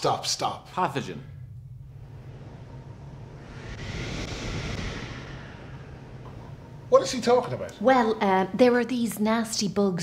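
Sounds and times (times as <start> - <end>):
steady low rumble: 0.9 - 8.8
hissing whoosh: 1.4 - 7.7.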